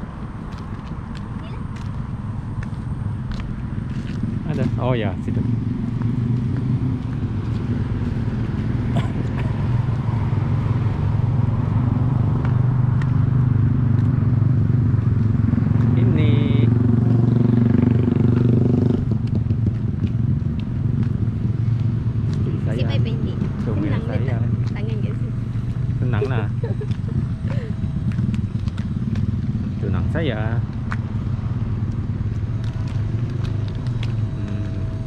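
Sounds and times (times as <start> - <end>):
road traffic rumble: 0.0 - 35.0
vehicle engine passing close: 1.6 - 35.0.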